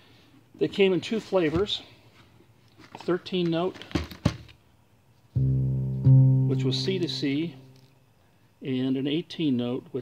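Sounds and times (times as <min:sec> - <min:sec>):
sustained low synth bass note: 0:05.4 - 0:07.8.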